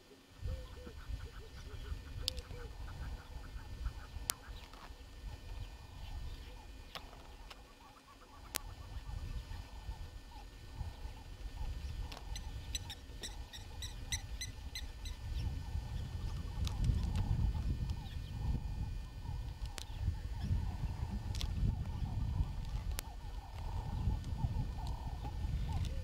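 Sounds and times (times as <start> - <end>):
wind rumble on microphone: 0.4 - 6.8, 8.5 - 26.0.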